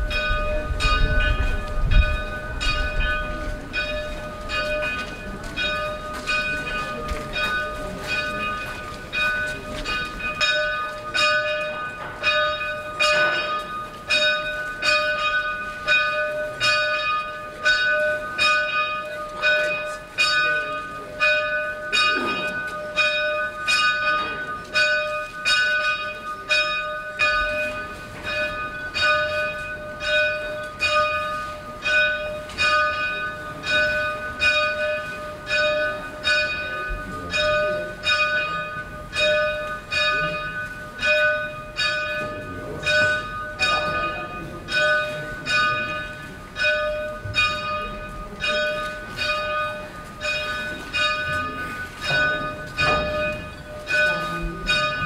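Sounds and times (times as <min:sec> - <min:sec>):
church bell ringing: 0:00.0 - 0:55.0.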